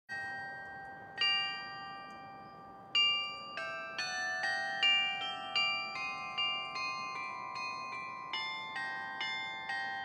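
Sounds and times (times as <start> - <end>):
carillon bells playing melody: 0.1 - 10.0.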